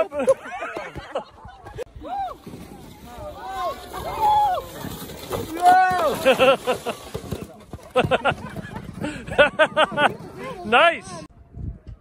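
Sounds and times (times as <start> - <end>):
children laughing: 0.0 - 1.9, 5.8 - 10.7.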